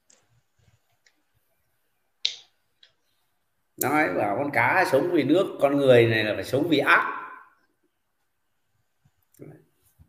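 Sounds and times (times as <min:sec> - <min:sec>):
man's voice: 0:03.8 - 0:07.4.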